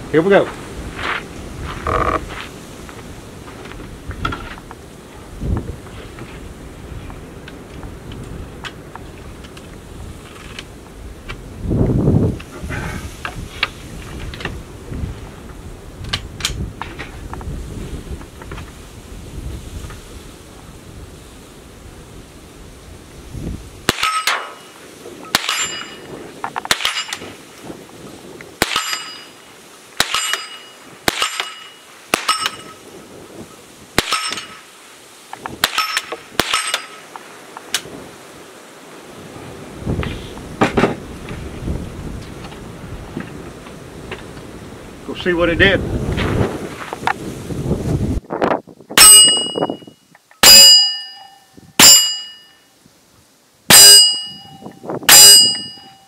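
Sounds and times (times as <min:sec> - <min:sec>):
rifle shots: 0:23.9 - 0:24.6, 0:25.3 - 0:26.0, 0:26.6 - 0:27.3, 0:28.6 - 0:29.3, 0:30.0 - 0:32.7, 0:34.0 - 0:34.6, 0:35.6 - 0:37.0
bullet clanging steel target: 0:23.9 - 0:27.3, 0:28.6 - 0:29.4, 0:30.0 - 0:32.8, 0:34.0 - 0:34.6, 0:35.6 - 0:37.1, 0:49.0 - 0:52.6, 0:53.7 - 0:56.0.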